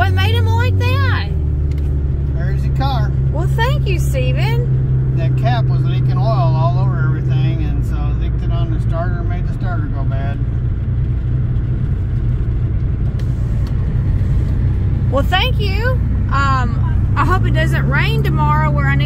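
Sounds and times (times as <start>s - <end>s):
car engine hum: 0.0s - 19.0s
road rumble: 0.0s - 19.0s.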